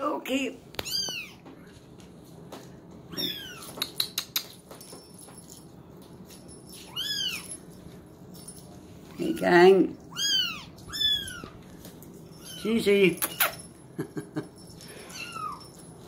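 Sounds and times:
kittens meowing: 0.8 - 1.4, 3.1 - 3.9, 10.1 - 11.6, 15.0 - 15.8.

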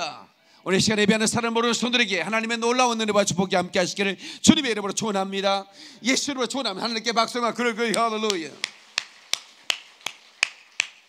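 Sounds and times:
person clapping hands: 7.9 - 11.0.

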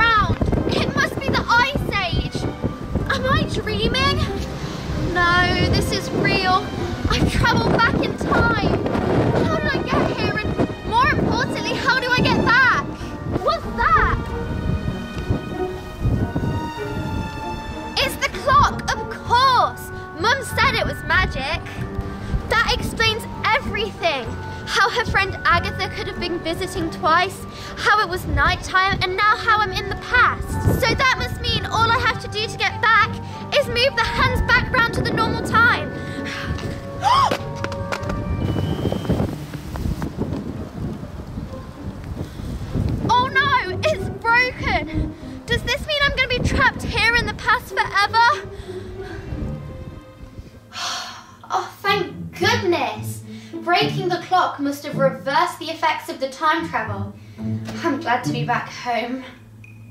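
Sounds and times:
wind buffeting microphone: 0.0 - 50.9
music of steady held tones: 0.0 - 59.9
girl crying out: 37.0 - 37.5.

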